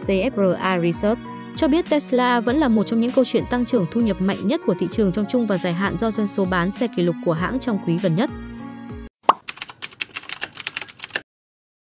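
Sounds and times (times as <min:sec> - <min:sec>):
keyboard typing clicks: 0:09.3 - 0:11.2.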